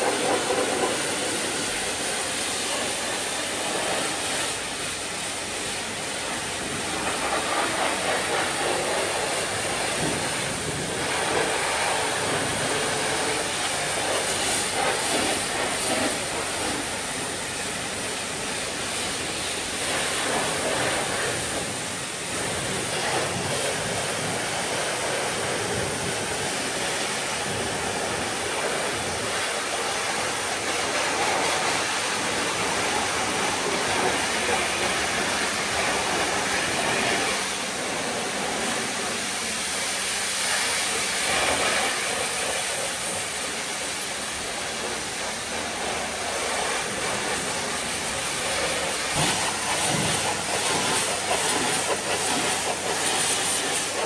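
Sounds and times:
pressure washer spraying water: 0:00.0 - 0:54.0.

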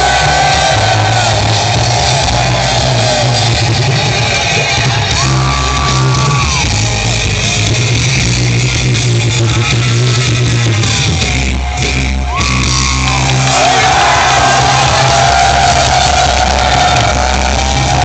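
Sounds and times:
live rock band with singers: 0:00.0 - 0:18.0.

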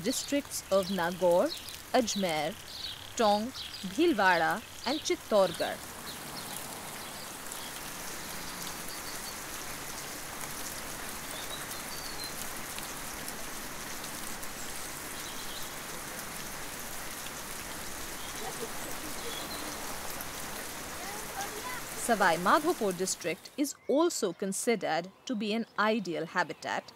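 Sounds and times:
steady rain falling: 0:00.0 - 0:23.6.

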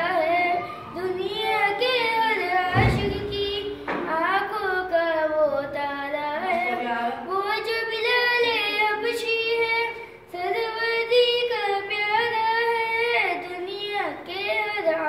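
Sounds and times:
boy singing unaccompanied: 0:00.0 - 0:15.0.

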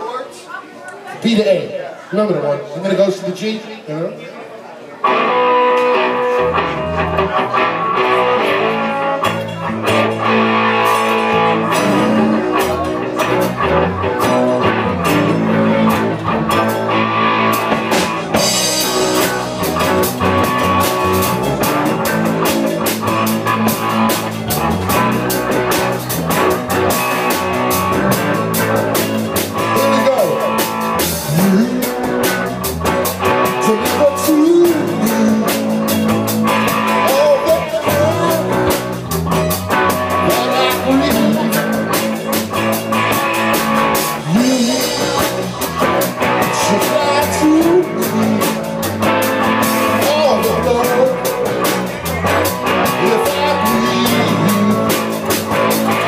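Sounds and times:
electric guitar: 0:05.0 - 0:56.0
drum kit beat: 0:05.1 - 0:56.0
electric bass: 0:05.1 - 0:56.0.

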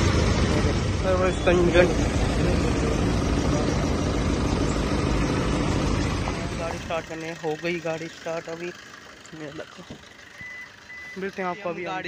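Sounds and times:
short electronic beeps: 0:10.4 - 0:11.8.

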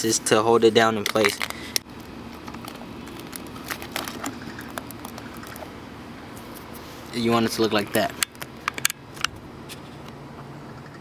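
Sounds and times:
tape and foil clicks and crinkles: 0:01.0 - 0:05.7.

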